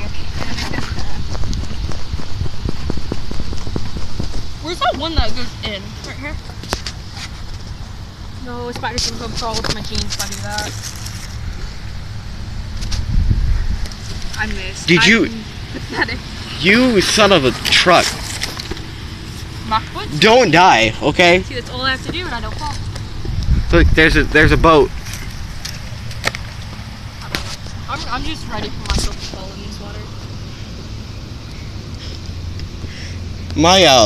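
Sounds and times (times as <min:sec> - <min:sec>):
wind rumble on microphone: 0:00.0 - 0:20.4, 0:21.5 - 0:33.6.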